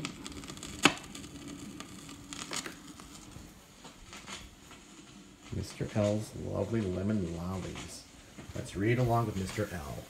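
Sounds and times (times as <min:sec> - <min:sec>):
vinyl surface noise crackles: 0:00.0 - 0:10.0.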